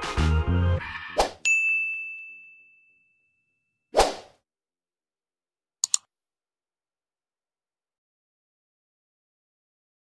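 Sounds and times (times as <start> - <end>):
bright bell ding: 1.4 - 3.7.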